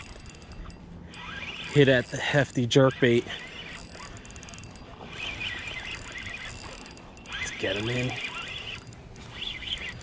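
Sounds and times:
squeaky fishing reel whine: 0.0s - 10.0s.

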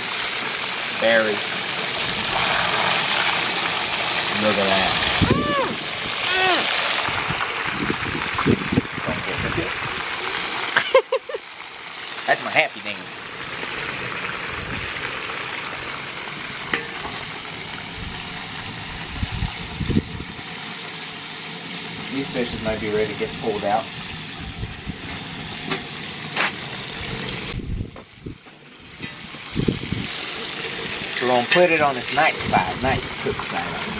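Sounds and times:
oil sizzling: 0.0s - 33.9s
short voice sounds: 5.3s - 6.8s.

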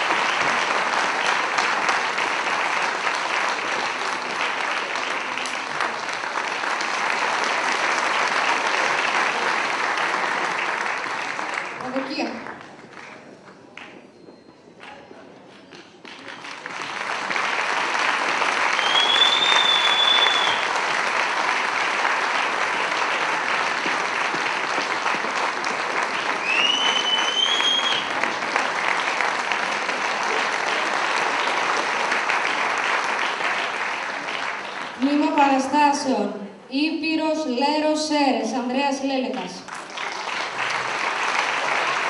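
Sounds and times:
audience clapping: 0.0s - 14.1s, 14.8s - 35.8s, 39.3s - 42.0s
short high whistles: 18.8s - 20.7s, 26.4s - 28.1s.

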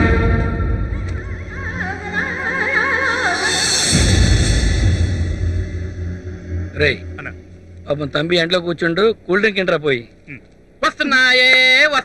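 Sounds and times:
low musical hum: 0.0s - 10.8s.

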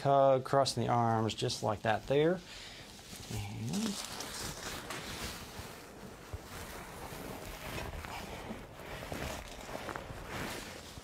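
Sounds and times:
clothing rustling on padded table: 2.9s - 11.0s.

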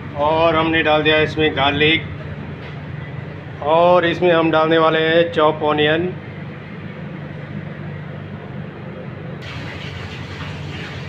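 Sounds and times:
kitchen machinery humming: 6.0s - 11.0s
steady hiss: 9.4s - 11.0s.

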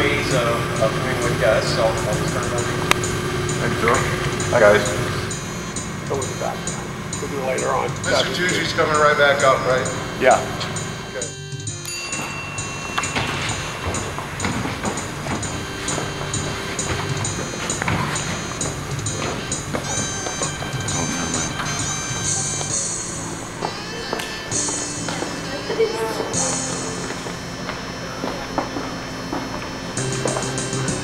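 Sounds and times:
background music with steady beat: 0.0s - 31.0s
voices: 0.0s - 31.0s.

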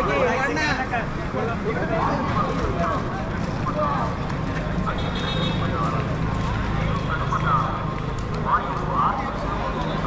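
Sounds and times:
low hum of traffic: 0.0s - 10.0s
people talking in crowd: 0.0s - 10.0s.

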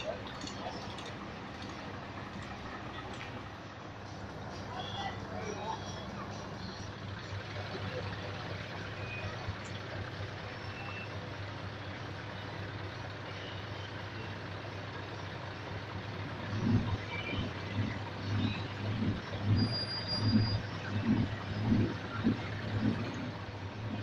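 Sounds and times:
diesel truck engine rumbling: 0.0s - 24.0s.

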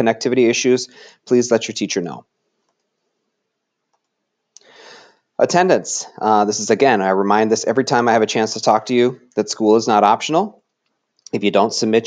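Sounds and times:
short intake of breath: 0.9s - 1.3s, 4.6s - 5.3s.

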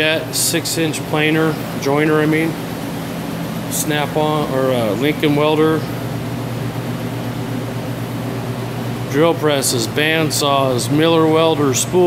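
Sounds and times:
machine hum with airy hiss: 0.0s - 12.0s.

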